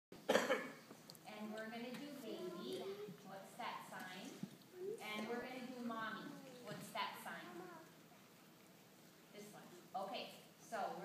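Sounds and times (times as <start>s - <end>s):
person coughing: 0.3s - 0.8s.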